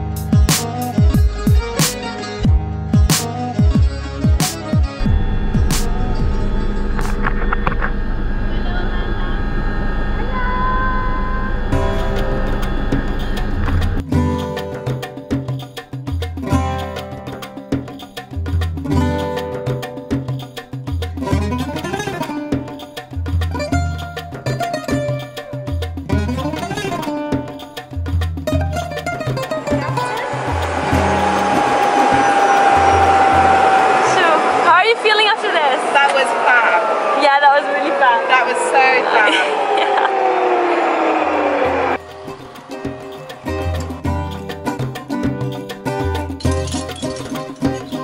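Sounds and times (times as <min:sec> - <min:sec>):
background music with plucked bass: 0:00.0 - 0:07.9, 0:11.7 - 0:33.7, 0:42.0 - 0:48.0
helicopter turbine whine: 0:04.9 - 0:14.0, 0:29.5 - 0:45.2
helicopter engine and rotor drone: 0:05.0 - 0:14.0.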